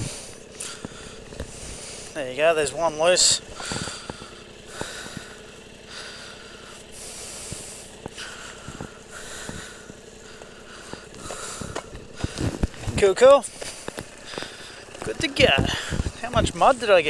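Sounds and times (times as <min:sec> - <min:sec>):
steady low rumble: 0:00.0 - 0:17.0
strap rasping pulls: 0:03.5 - 0:16.8.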